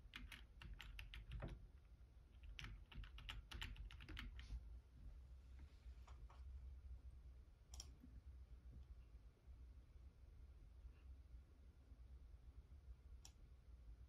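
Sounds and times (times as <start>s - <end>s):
faint keyboard typing: 0.0s - 4.6s.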